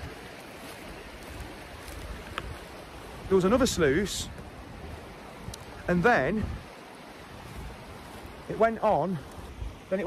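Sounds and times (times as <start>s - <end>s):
water rushing over stones: 0.0s - 10.0s.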